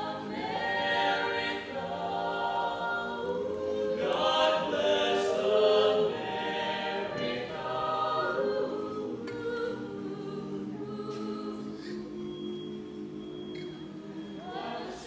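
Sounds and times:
a cappella choir singing: 0:00.0 - 0:15.0.

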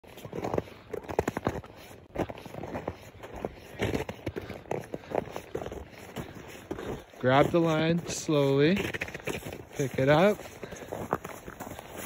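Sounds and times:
footsteps crunching in snow: 0:00.0 - 0:12.0.

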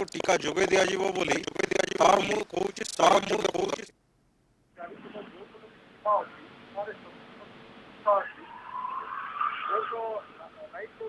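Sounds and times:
man speaking: 0:00.0 - 0:03.9
vehicle passing: 0:07.2 - 0:11.0.

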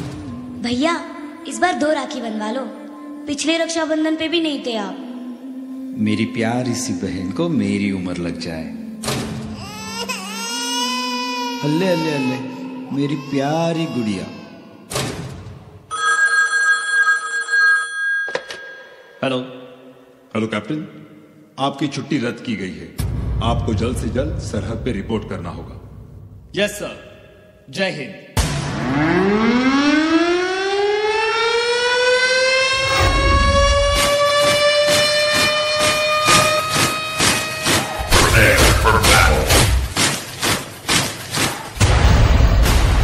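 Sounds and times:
telephone ringing: 0:15.9 - 0:19.2
low boom: 0:23.0 - 0:26.4
air-raid siren wailing: 0:28.7 - 0:38.4
fast drum beat: 0:37.9 - 0:41.0.

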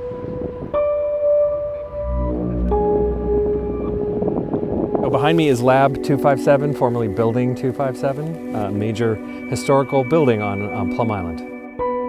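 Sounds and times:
ambient music drone note: 0:00.0 - 0:12.0
low rumble: 0:01.5 - 0:06.2.

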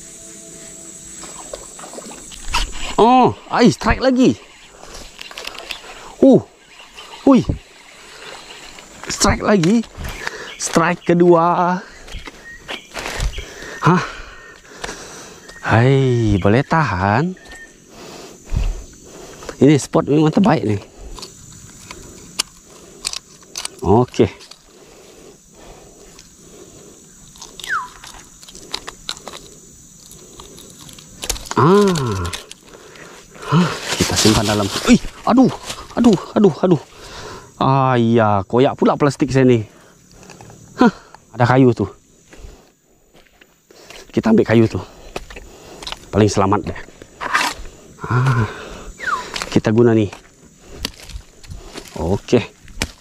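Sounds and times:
handling ticks and rustles: 0:00.6 - 0:13.8, 0:14.4 - 0:53.0
clicks and rustles of unhooking: 0:21.1 - 0:24.7, 0:27.3 - 0:32.8.

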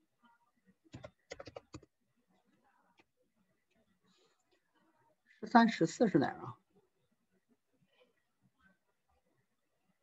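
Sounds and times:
faint keyboard keystrokes: 0:00.9 - 0:01.9.

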